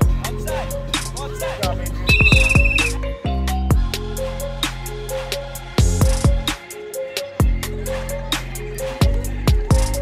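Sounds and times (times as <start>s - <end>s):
hip-hop music with bass drops: 0.0s - 10.0s
whistle blast: 2.1s - 3.0s.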